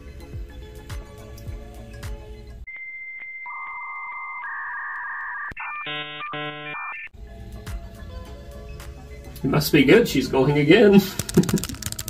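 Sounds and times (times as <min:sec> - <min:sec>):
background music: 0:00.0 - 0:02.7, 0:07.2 - 0:12.0
electronic beep tones: 0:02.7 - 0:07.1
buzzy electronic chord: 0:04.4 - 0:06.8.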